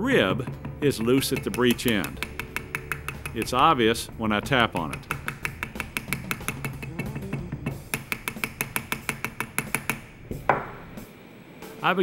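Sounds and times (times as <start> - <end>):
rubber mallet tapping gun barrel: 0.4 - 3.8, 4.4 - 10.7.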